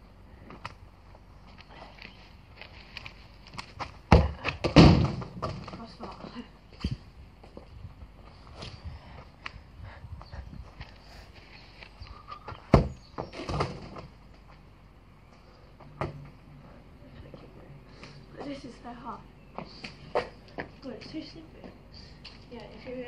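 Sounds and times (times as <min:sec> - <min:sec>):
football being kicked: 0:04.1 - 0:05.7, 0:12.7 - 0:14.0.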